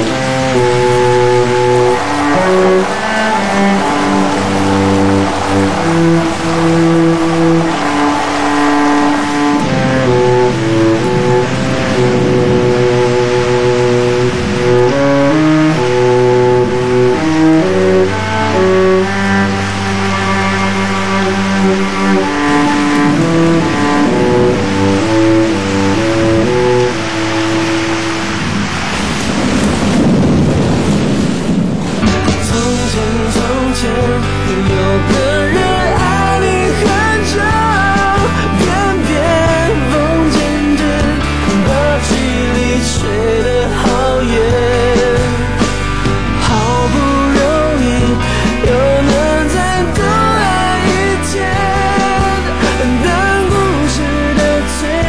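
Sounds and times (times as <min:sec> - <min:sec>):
instrumental pop music: 0:00.0 - 0:28.0, 0:32.0 - 0:55.0.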